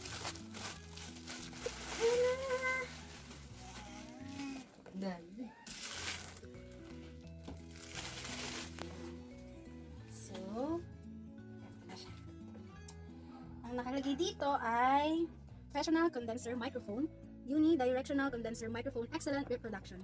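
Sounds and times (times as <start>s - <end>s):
bubble wrap crinkling: 0.0s - 4.8s, 5.6s - 9.5s
background music: 0.0s - 20.0s.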